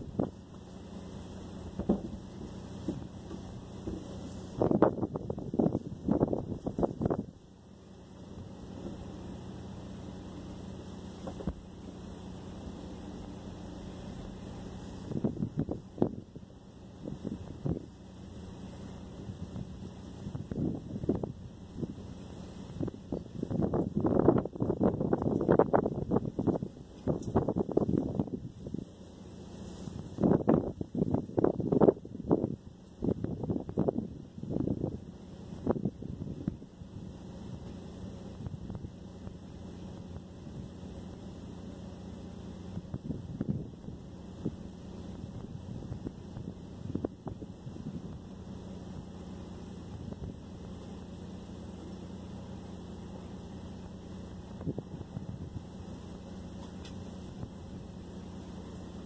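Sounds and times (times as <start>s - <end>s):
wind noise on microphone: 0.0s - 11.7s, 12.5s - 59.0s
low hum inside car cabin: 0.0s - 59.0s.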